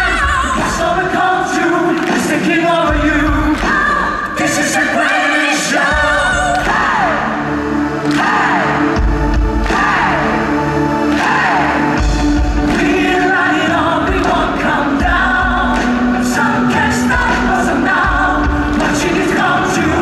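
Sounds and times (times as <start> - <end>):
man singing lead vocals: 0.0 - 7.4, 12.6 - 20.0
backing vocals: 0.0 - 20.0
pop-rock band playing live: 0.0 - 20.0
electric guitar: 5.8 - 20.0
heavy bass line: 6.0 - 20.0.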